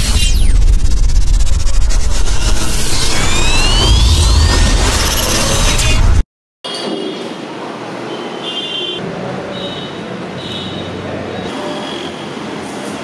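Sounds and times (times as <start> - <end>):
deep steady rumble: 0.0 - 6.2
falling swoosh: 0.0 - 6.2
rising whistling sweeps: 1.6 - 5.6.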